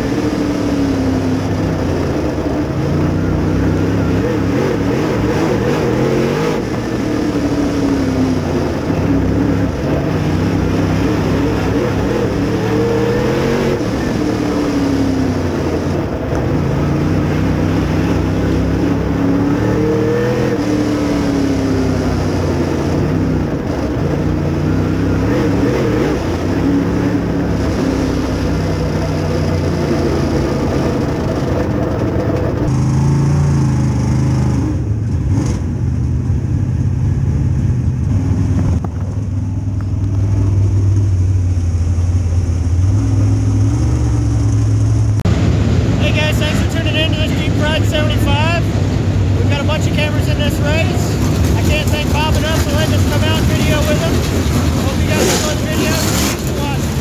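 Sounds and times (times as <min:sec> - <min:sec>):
race car engine from cockpit: 0:00.0 - 0:57.0.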